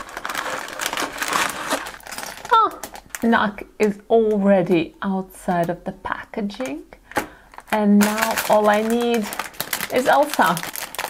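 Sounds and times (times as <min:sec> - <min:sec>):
cardboard box tearing: 0:00.0 - 0:02.1
packaging rustling: 0:00.0 - 0:03.3, 0:07.1 - 0:11.0.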